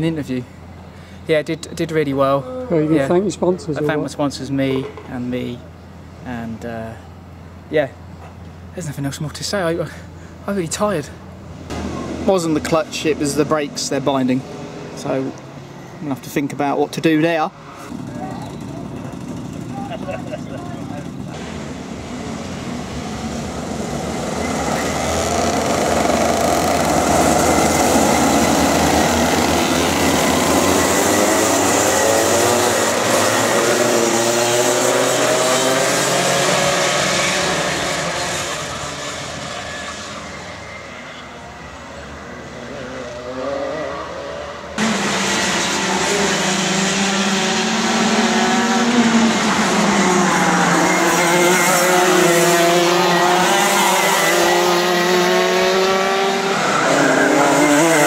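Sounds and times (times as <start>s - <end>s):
racing kart engines revving: 10.8s - 58.0s
nearby kart engine: 17.6s - 58.0s.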